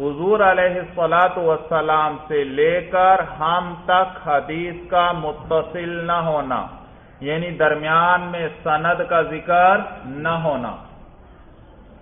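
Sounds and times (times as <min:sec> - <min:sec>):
man chanting: 0:00.0 - 0:10.9.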